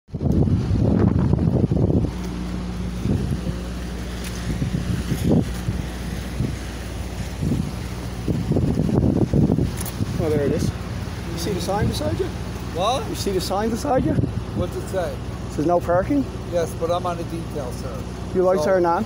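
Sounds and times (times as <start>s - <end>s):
wind buffeting microphone: 0.1s - 15.5s
truck engine idling: 0.2s - 19.0s.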